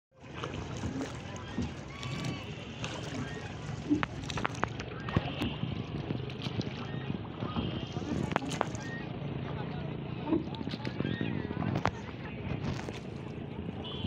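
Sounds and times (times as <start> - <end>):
water lapping against a boat: 0.1 - 14.0
voices in background: 0.4 - 14.0.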